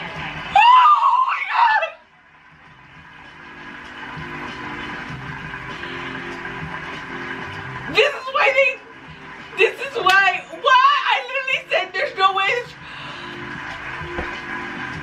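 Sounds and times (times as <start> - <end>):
music: 0.0 - 15.0
women screaming with excitement: 0.5 - 2.0.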